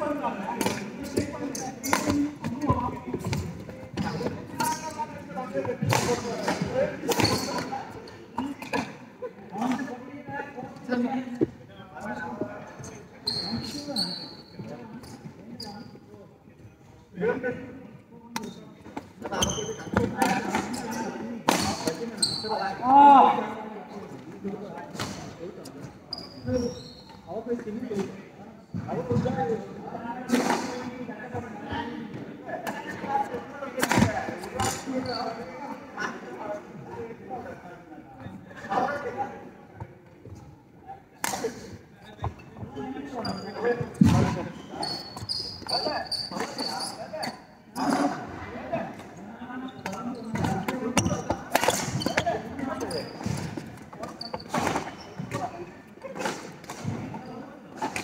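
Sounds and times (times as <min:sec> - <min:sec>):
shoe squeak on floor: 0:00.7 - 0:05.2, 0:05.9 - 0:08.9, 0:12.2 - 0:16.1, 0:18.4 - 0:22.8, 0:25.0 - 0:27.4, 0:34.4 - 0:36.1, 0:42.0 - 0:48.3, 0:49.6 - 0:58.0.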